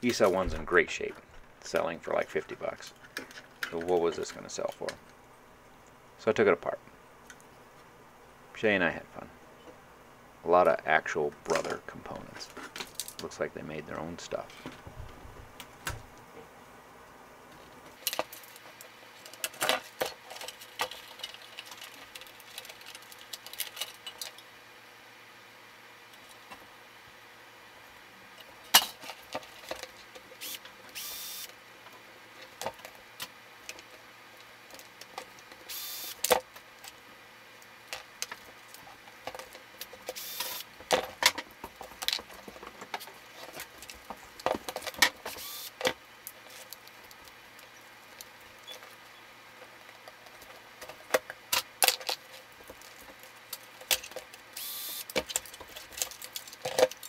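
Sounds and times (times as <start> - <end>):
plastic parts scraping: 18.0 - 24.4, 55.1 - 57.0.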